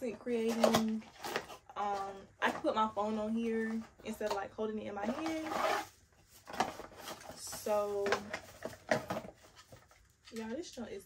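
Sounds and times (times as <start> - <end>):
cardboard and plastic rustling: 0.0 - 10.7.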